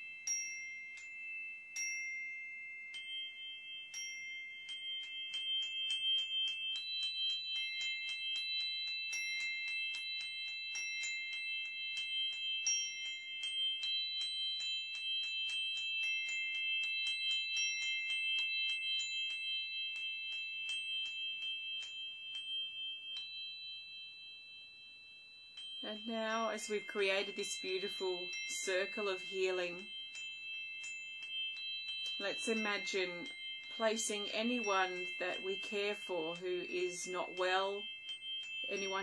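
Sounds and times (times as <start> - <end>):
singing bowl ringing: 0.0 - 39.0.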